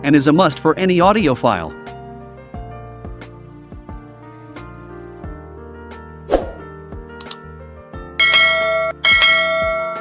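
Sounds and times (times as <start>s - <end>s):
soft background music: 0.0s - 10.0s
short whoosh: 6.3s - 6.7s
quick double click: 7.2s - 7.4s
bright bell chime: 8.2s - 10.0s.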